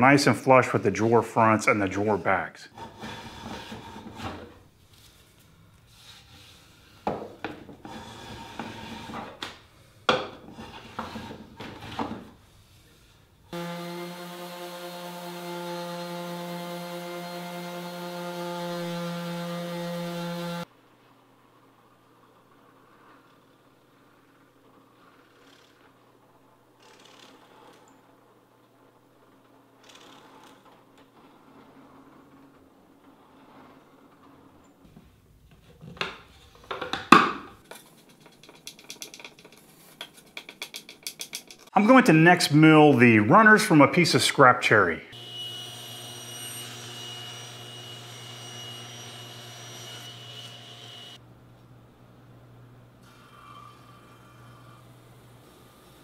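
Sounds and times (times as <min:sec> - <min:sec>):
block plane strokes on wood: 0:02.0 - 0:04.5, 0:05.9 - 0:09.3, 0:10.4 - 0:12.1.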